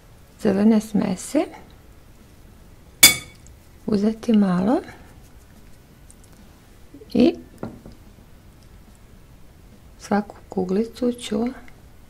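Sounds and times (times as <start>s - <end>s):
metal spoon clinking glass bowl: 3.0s - 3.4s.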